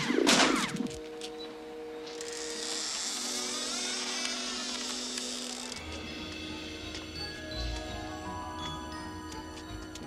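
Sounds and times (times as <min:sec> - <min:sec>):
low orchestral film score notes: 0:00.1 - 0:10.0
high electric motor whirring: 0:02.1 - 0:07.9.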